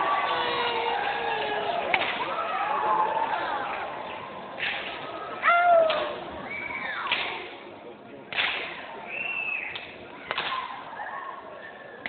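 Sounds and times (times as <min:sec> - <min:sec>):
audience cheering: 0:00.0 - 0:04.0
whistles: 0:06.4 - 0:07.2, 0:09.0 - 0:09.9.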